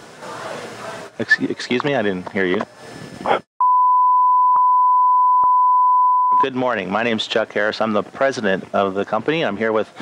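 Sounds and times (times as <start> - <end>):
censor bleep tone: 3.6 - 6.6.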